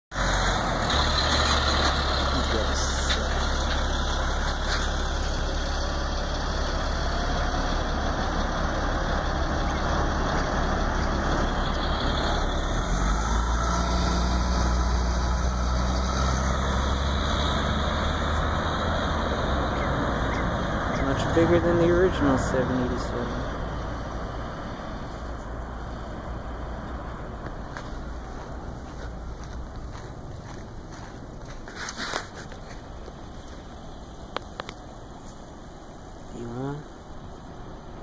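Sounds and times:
vehicle engine idling: 0.1s - 38.0s.

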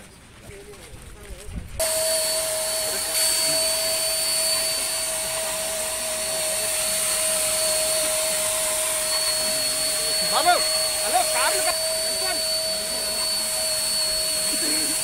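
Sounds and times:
electric sprayer motor whine: 1.8s - 15.0s
rushing hiss of spray: 1.8s - 15.0s.

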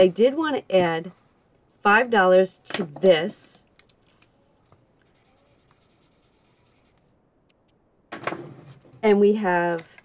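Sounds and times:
marker scratching on paper: 5.0s - 7.1s.

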